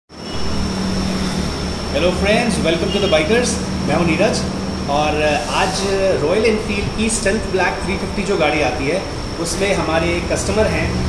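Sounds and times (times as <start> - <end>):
faint high whine: 0.1 - 10.9
low hum: 0.2 - 9.4.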